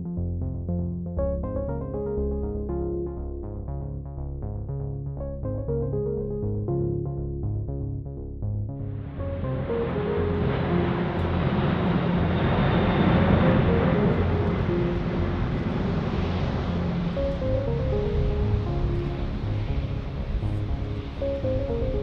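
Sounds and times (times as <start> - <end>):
background music with pulsing bass: 0.0 - 22.0
jet flying overhead: 9.0 - 22.0.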